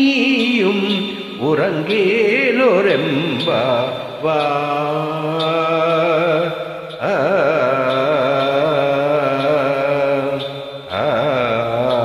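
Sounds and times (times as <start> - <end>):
person singing ornamented notes: 0.0 - 12.0
steady drone: 0.0 - 12.0.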